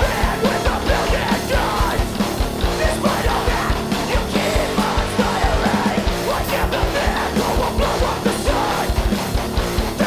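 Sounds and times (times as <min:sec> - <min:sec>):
heavy rock band playing: 0:00.0 - 0:10.0
yelled lead vocals: 0:00.0 - 0:10.0.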